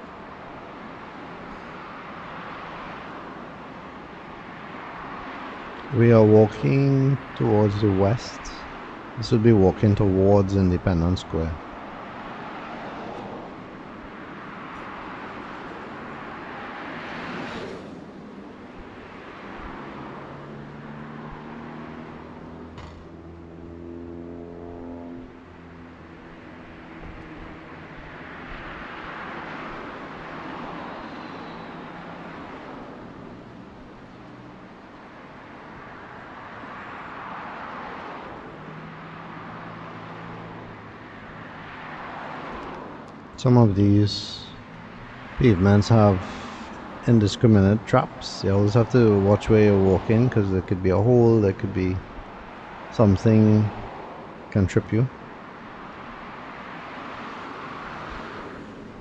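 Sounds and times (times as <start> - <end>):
cars passing: 0.0 - 59.0
steady engine hum: 0.0 - 59.0.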